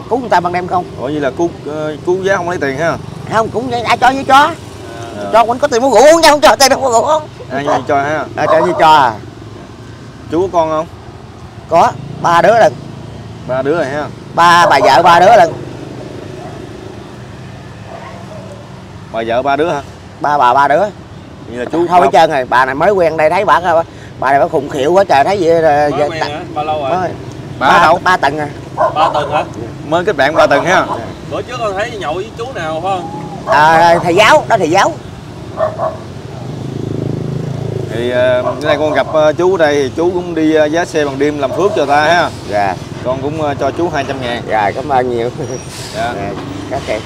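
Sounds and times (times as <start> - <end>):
car passing by: 28.6 - 38.9.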